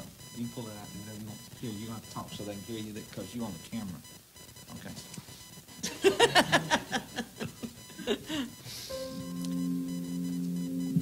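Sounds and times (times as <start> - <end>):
digital keyboard sustained chord: 8.7 - 11.0.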